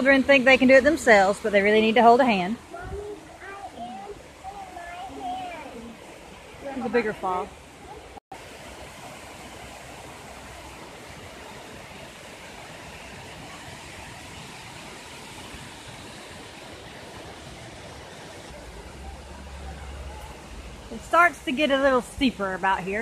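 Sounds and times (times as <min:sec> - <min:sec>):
water rushing over rocks: 0:00.0 - 0:23.0.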